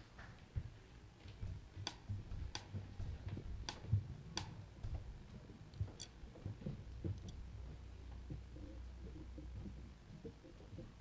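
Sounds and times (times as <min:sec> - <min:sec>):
footsteps on stage floor: 0:00.0 - 0:04.1, 0:04.8 - 0:08.5
sharp clicks: 0:01.8 - 0:02.7.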